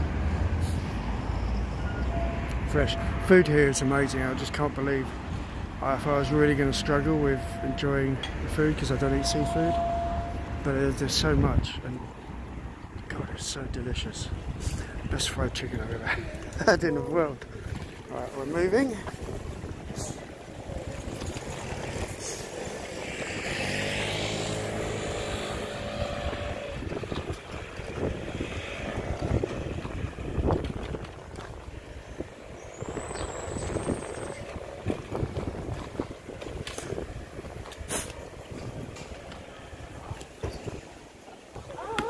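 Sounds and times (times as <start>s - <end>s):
bicycle riding rumble: 17.3s - 42.0s
wind on microphone: 19.0s - 22.0s, 25.8s - 41.0s
motor vehicle passing: 19.3s - 40.0s
short high squeal: 22.0s - 26.8s.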